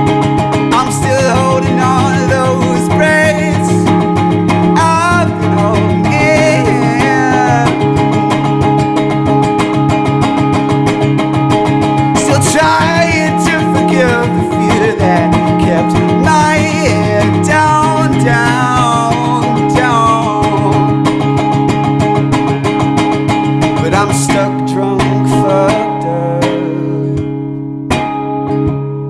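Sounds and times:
electric guitar through amp: 0:00.0 - 0:29.0
person singing wordless melody: 0:00.7 - 0:08.1, 0:12.2 - 0:21.0, 0:23.8 - 0:27.3.

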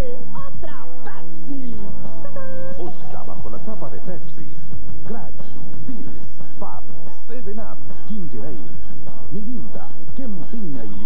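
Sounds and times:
background music: 0:00.0 - 0:11.0
man making warbling vocal sounds: 0:02.1 - 0:04.3.

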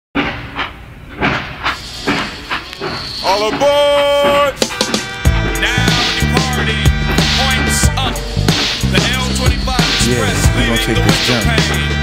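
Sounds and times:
steam train chugging: 0:00.4 - 0:12.0.

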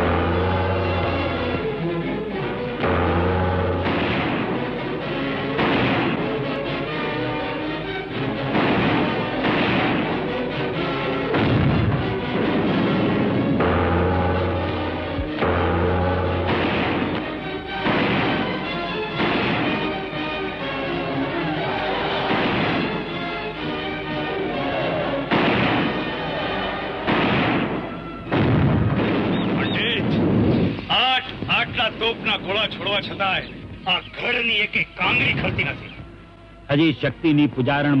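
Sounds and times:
background music: 0:00.0 - 0:38.0
loud blast: 0:02.8 - 0:04.8, 0:05.5 - 0:06.5, 0:08.4 - 0:10.5, 0:11.2 - 0:20.1, 0:21.7 - 0:23.2, 0:24.9 - 0:33.2
gunfire: 0:02.8 - 0:04.9, 0:05.5 - 0:06.7, 0:08.2 - 0:20.1, 0:22.0 - 0:23.2, 0:24.9 - 0:30.8
cannon fire: 0:02.8 - 0:06.7, 0:08.2 - 0:20.1, 0:21.9 - 0:23.2, 0:24.9 - 0:30.8.

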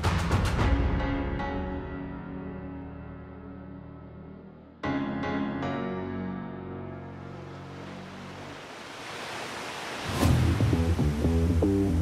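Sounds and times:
piano chord: 0:00.9 - 0:08.4
whoosh transition effect: 0:09.0 - 0:11.0.

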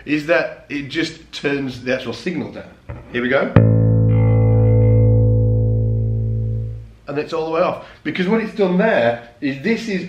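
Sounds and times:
low electric bass note: 0:03.6 - 0:06.9.

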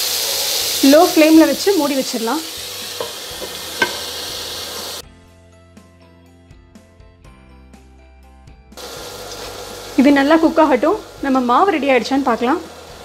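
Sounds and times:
chicken sizzling in a pan: 0:00.0 - 0:05.0, 0:08.8 - 0:13.0.

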